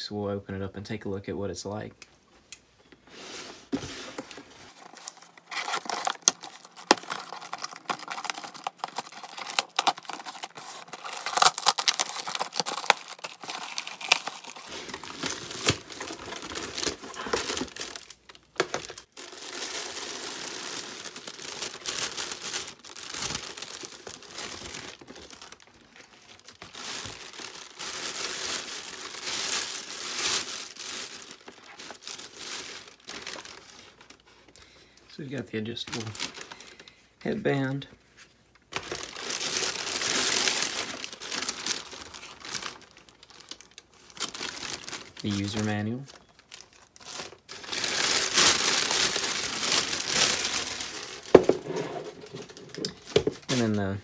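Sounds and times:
cardboard ripping: 3.7 - 25.7, 47.0 - 53.6
plastic bags crinkling: 3.7 - 35.0, 35.6 - 37.8, 38.5 - 54.0.

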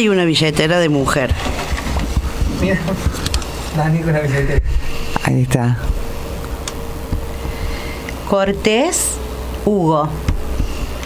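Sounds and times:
faint constant hum: 0.0 - 11.0
low rumble and hiss: 0.0 - 11.0.

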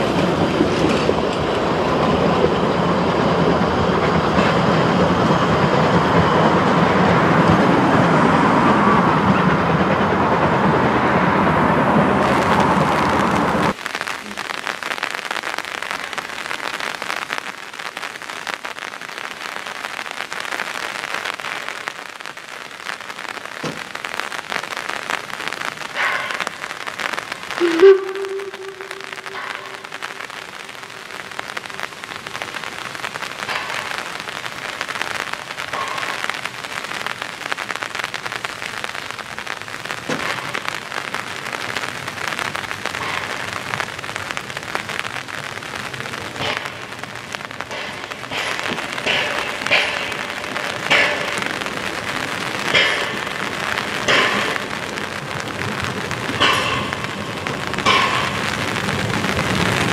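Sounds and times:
rain falling on platform: 0.0 - 59.9
loud held tone: 27.6 - 31.0.

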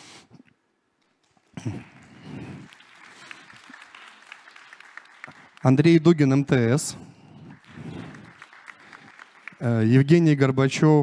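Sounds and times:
audience applauding lightly: 1.0 - 11.0.

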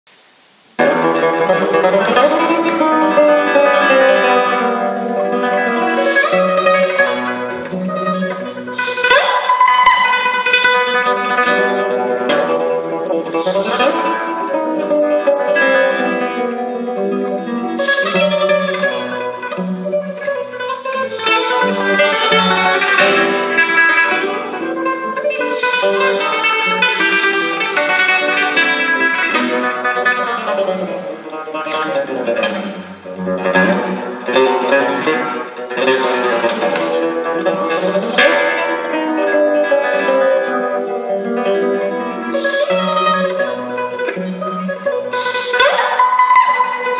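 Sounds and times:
classical guitar playing: 0.2 - 46.9.

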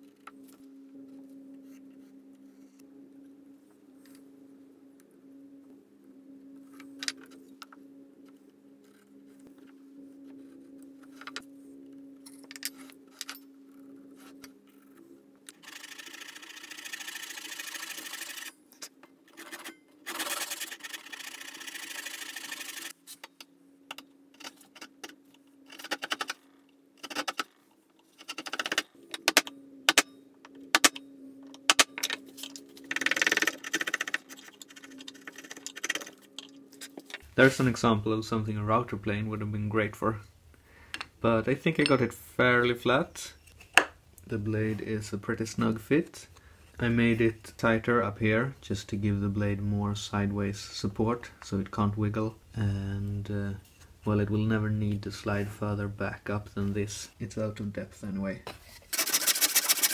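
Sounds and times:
chisel scraping wood: 58.6 - 59.9.

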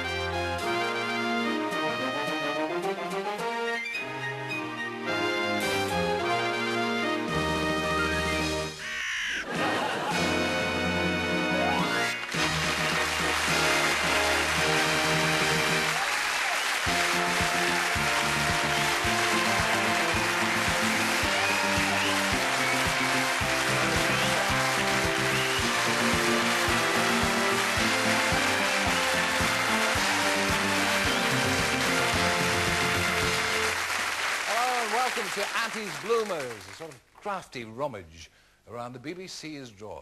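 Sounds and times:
instrumental theme music with beat: 0.0 - 8.9, 9.5 - 16.0, 16.8 - 34.8.

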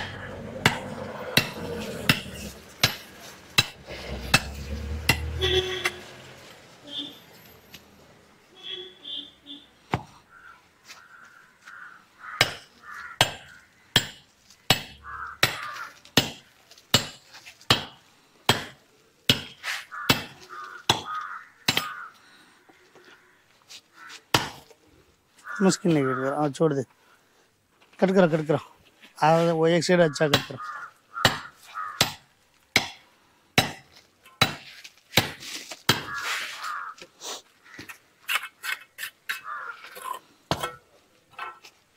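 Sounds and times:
tool chopping stone: 0.0 - 5.3, 12.4 - 22.0, 24.3 - 24.7, 30.3 - 30.6, 31.2 - 33.0, 33.6 - 36.2, 40.5 - 40.8.

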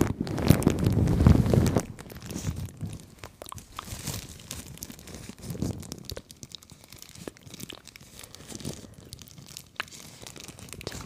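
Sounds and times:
plastic crackles: 0.0 - 11.0
plastic rustling on microphone: 0.0 - 11.0.

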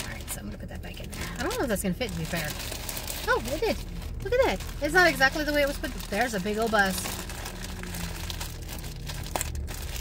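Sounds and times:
car engine idling: 0.0 - 10.0
plastic bag crinkling: 0.0 - 10.0.

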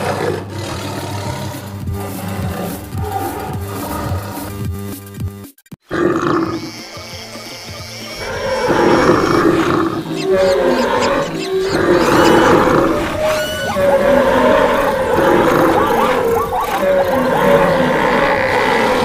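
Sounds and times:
animal roars and calls: 0.0 - 4.5, 5.9 - 19.0
background music: 0.0 - 19.0.

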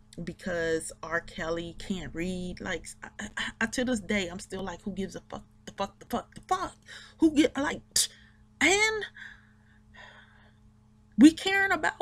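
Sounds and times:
low steady hum: 0.0 - 12.0
woman breathing: 9.2 - 10.6.

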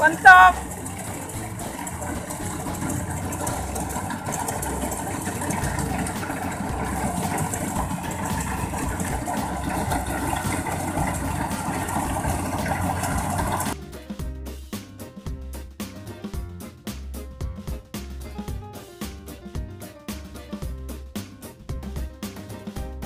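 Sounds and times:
combine harvester running: 0.0 - 13.8.

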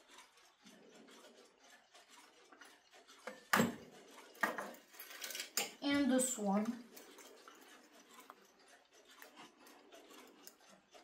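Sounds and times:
alarm clock knocks and clicks: 3.3 - 3.8.

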